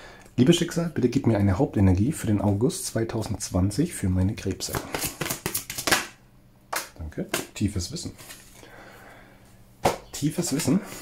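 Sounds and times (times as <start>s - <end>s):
cards being shuffled: 4.6s - 7.5s.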